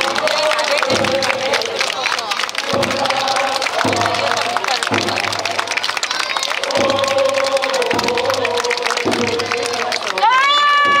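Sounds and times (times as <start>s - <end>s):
crowd noise: 0.0s - 11.0s
scattered claps: 0.0s - 11.0s
long shouted call: 9.6s - 11.0s.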